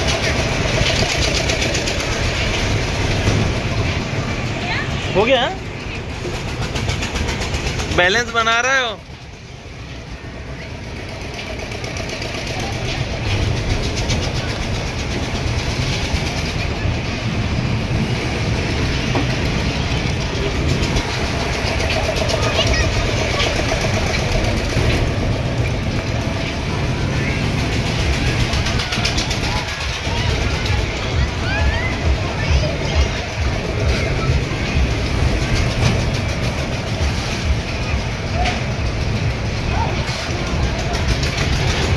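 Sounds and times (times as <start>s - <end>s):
crowd voices: 0.0s - 41.9s
fairground ride rushing and rumbling: 0.0s - 41.9s.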